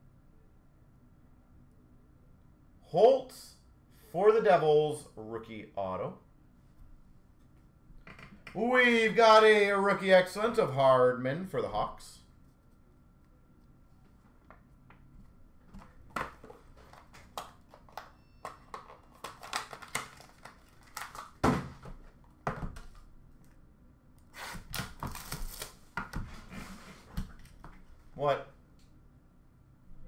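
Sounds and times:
cardboard rustling and crinkling: 0:13.9 - 0:18.1, 0:18.7 - 0:22.3
cards and card boxes handled: 0:14.0 - 0:23.0.

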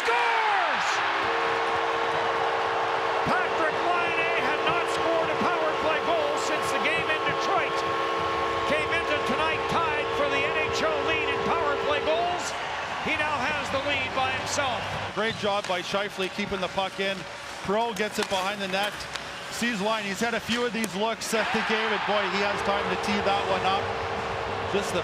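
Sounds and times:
goal horn blowing: 0:00.0 - 0:13.2
crowd cheering: 0:00.0 - 0:25.0.

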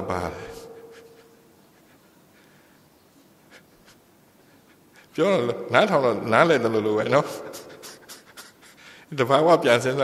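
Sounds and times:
man speaking: 0:00.0 - 0:00.8, 0:05.2 - 0:07.8, 0:09.1 - 0:10.0.

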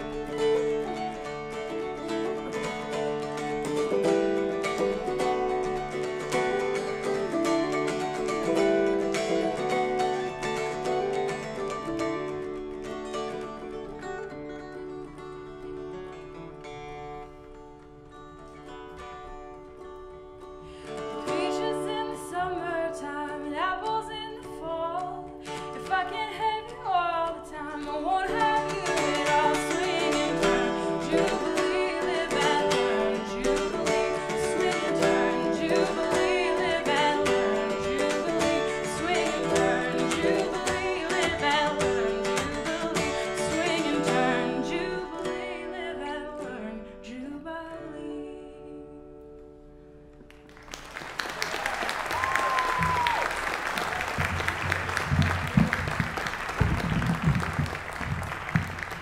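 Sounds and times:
woman singing: 0:00.0 - 0:11.8, 0:20.8 - 0:49.2.

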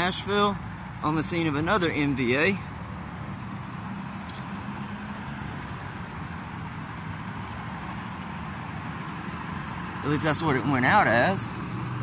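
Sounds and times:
road traffic noise: 0:00.0 - 0:12.0
vehicle engines idling: 0:00.0 - 0:12.0.

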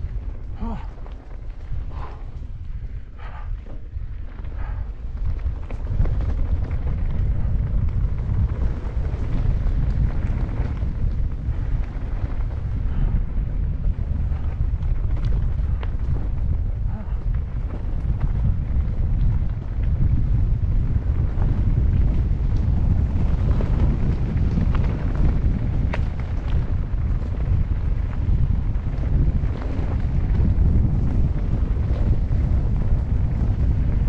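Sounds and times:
bike rattling: 0:00.0 - 0:34.0
bike tyres on rocky trail: 0:00.0 - 0:34.0
wind buffeting microphone: 0:00.0 - 0:34.0.

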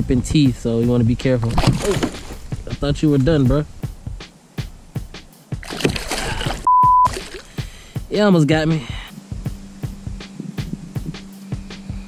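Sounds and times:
water splashing: 0:01.3 - 0:02.8, 0:05.5 - 0:07.8
censor beep: 0:06.6 - 0:07.1.

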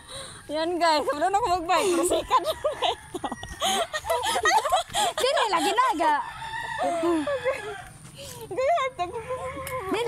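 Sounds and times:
rooster crowing: 0:02.1 - 0:04.3, 0:06.0 - 0:08.1.

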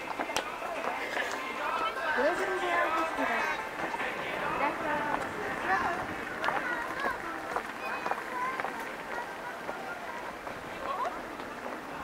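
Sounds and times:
city noise: 0:00.0 - 0:12.0
faint voices of passers-by: 0:00.0 - 0:12.0
footsteps on pavement: 0:00.0 - 0:12.0.

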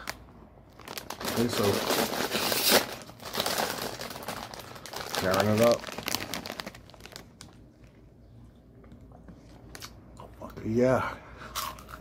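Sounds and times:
plastic snack bag crinkling: 0:00.0 - 0:08.0.

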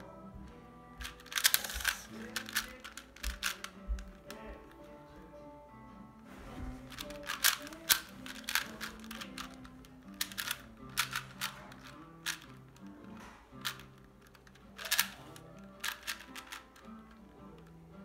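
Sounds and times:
quiet background music: 0:00.0 - 0:18.0
speed cube layers clicking: 0:01.0 - 0:04.3, 0:06.8 - 0:12.9, 0:13.6 - 0:17.7.

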